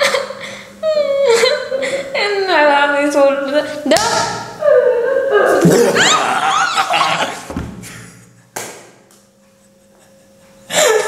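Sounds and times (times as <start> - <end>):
woman and man laughing: 0.0 - 2.2, 4.6 - 7.5, 9.5 - 11.0
high-pitched squealing laughs: 4.6 - 7.5.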